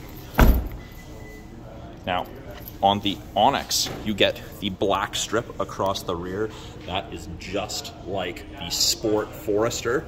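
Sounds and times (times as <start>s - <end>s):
car liftgate thudding shut: 0.4s - 0.8s.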